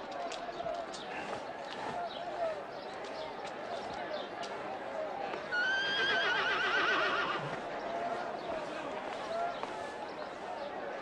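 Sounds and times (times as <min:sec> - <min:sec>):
murmur of voices: 0:00.0 - 0:11.0
horse whinnying: 0:05.6 - 0:07.5.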